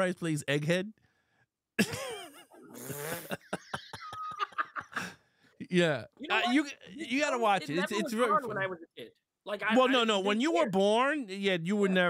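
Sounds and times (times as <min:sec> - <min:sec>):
man laughing hard: 0:01.8 - 0:05.2.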